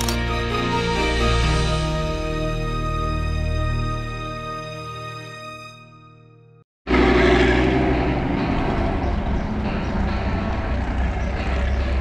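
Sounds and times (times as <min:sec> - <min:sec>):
car engine rumbling: 0:06.9 - 0:12.0.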